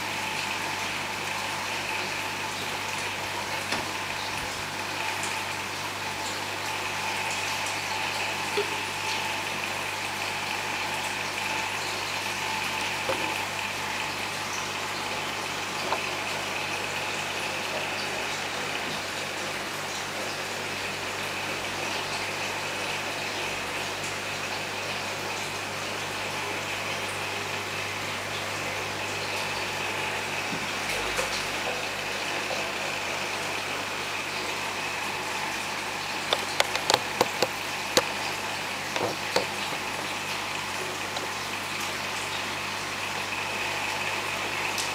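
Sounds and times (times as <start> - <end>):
aquarium equipment hum: 0.0 - 44.9
water noise: 0.0 - 44.9.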